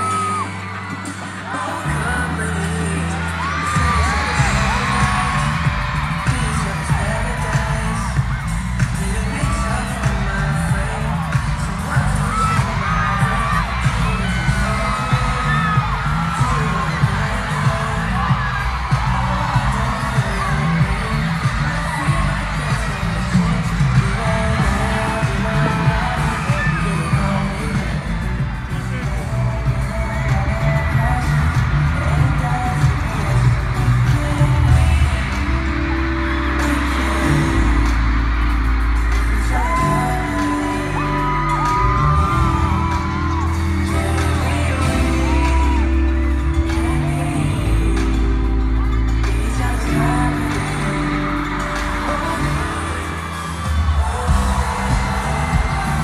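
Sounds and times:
audience cheering: 0:00.0 - 0:56.0
heavy bass line with steady beat: 0:00.0 - 0:56.0
person singing: 0:00.0 - 0:56.0.

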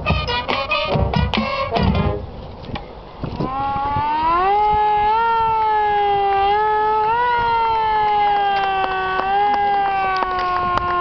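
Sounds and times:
marching band brass and drums: 0:00.0 - 0:02.3
long rising tone: 0:03.4 - 0:11.0.

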